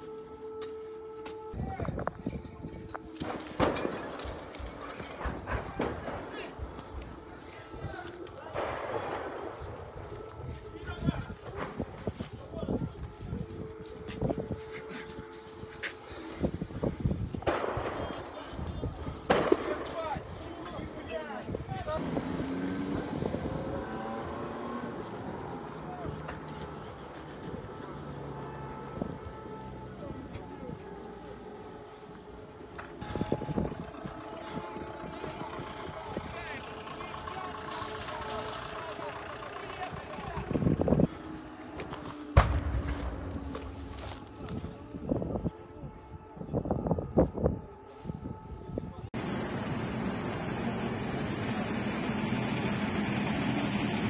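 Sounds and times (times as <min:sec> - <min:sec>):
vehicle engine hum: 0:00.0 - 0:45.5, 0:49.0 - 0:54.0
people talking outdoors: 0:00.0 - 0:54.0
gunshots: 0:03.2 - 0:07.0, 0:17.4 - 0:20.4, 0:42.2 - 0:44.0
gunfire bursts: 0:17.4 - 0:20.3.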